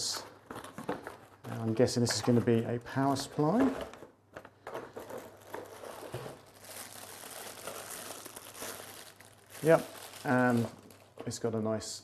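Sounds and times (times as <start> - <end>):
plastic bag crinkling: 0.0 - 11.5.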